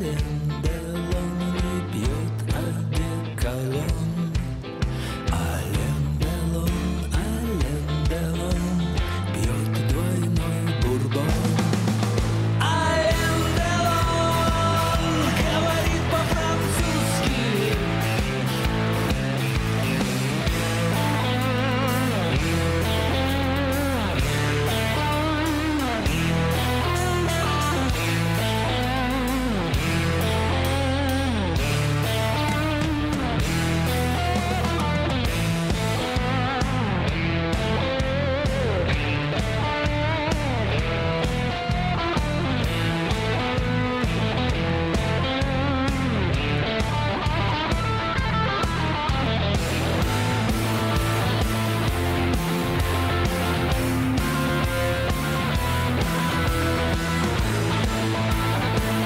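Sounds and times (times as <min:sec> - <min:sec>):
bass guitar: 0:00.0 - 0:59.0
drums: 0:00.0 - 0:59.0
electric guitar lead: 0:00.0 - 0:59.0.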